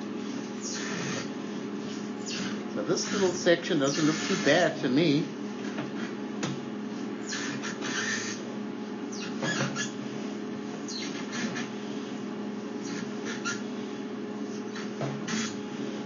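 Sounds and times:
electrical hum: 0:00.0 - 0:16.0
cable squeaking and scraping in pipe: 0:00.4 - 0:04.8, 0:07.2 - 0:08.5, 0:09.1 - 0:10.0, 0:10.8 - 0:11.8, 0:12.8 - 0:13.7, 0:14.5 - 0:15.6.

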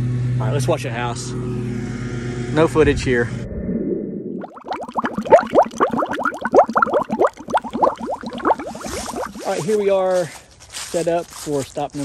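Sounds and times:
rising bubble blips: 0:03.4 - 0:09.7.

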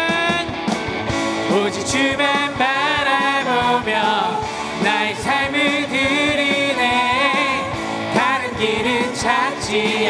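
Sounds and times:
group singing praise song: 0:01.5 - 0:10.0.

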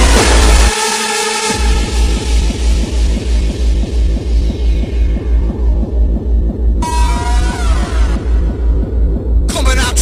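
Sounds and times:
distorted kick drum pounding: 0:01.5 - 0:10.0.

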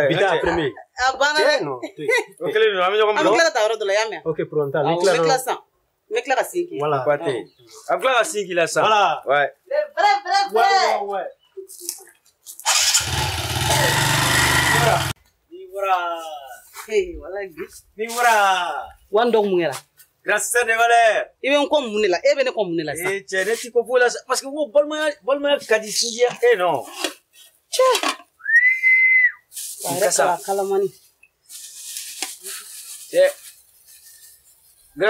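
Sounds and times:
motorcycle engine starting and running: 0:12.6 - 0:15.2
man whistling a steady note: 0:28.4 - 0:29.5.

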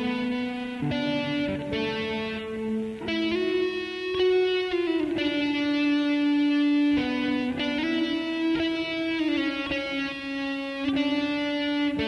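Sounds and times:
electric guitar melody: 0:00.0 - 0:12.0.

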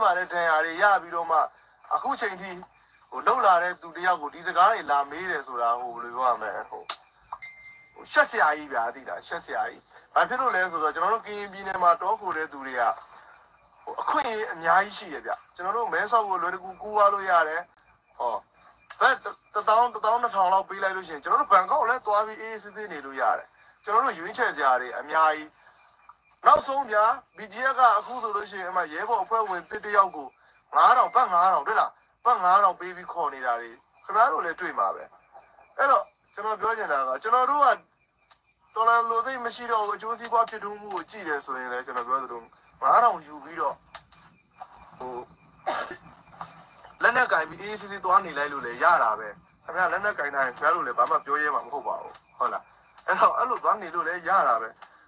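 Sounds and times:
high-pitched hiss: 0:00.0 - 0:55.0
person speaking: 0:26.5 - 0:35.1, 0:44.8 - 0:54.8
person coughing: 0:45.7 - 0:46.0.

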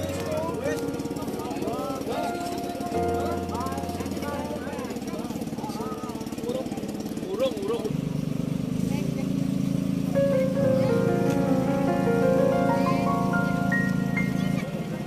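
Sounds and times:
people talking: 0:00.0 - 0:08.0, 0:08.8 - 0:09.5, 0:10.2 - 0:15.0
engine chugging: 0:00.0 - 0:15.0.

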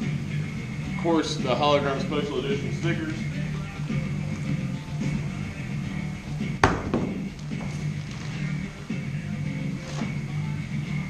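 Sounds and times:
music playing: 0:00.0 - 0:11.0.

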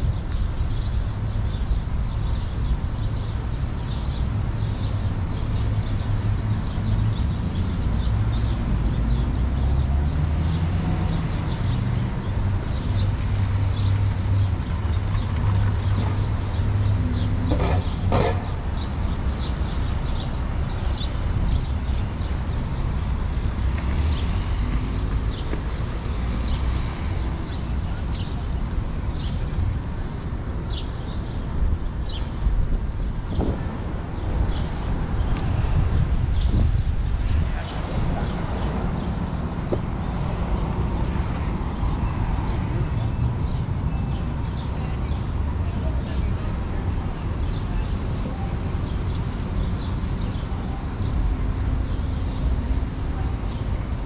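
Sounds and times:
footsteps on pavement: 0:00.0 - 0:54.0
passing cars rumble: 0:00.0 - 0:54.0.

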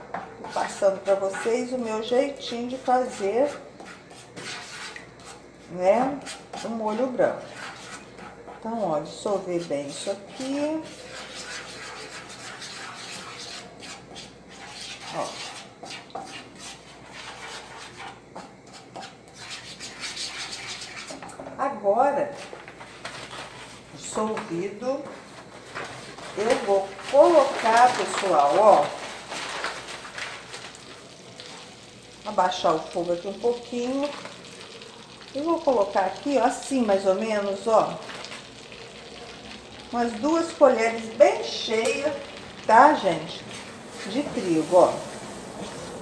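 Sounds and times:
wooden spoon scraping a frying pan: 0:00.0 - 0:21.6, 0:22.2 - 0:38.5, 0:40.2 - 0:46.0
light sizzle: 0:00.0 - 0:46.0.

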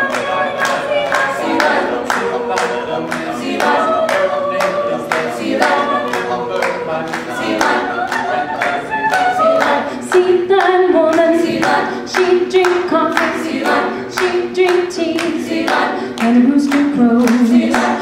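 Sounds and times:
a cappella group singing: 0:00.0 - 0:18.0
hand claps: 0:00.0 - 0:18.0.

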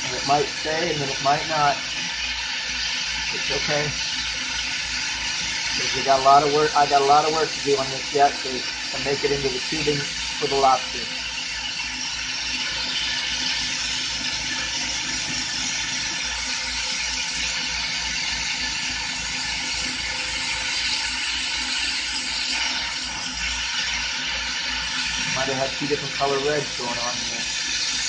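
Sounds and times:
torch flame hissing: 0:00.0 - 0:28.0.

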